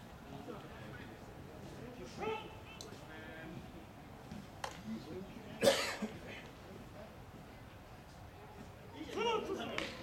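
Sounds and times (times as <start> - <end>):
person coughing: 5.6 - 6.1.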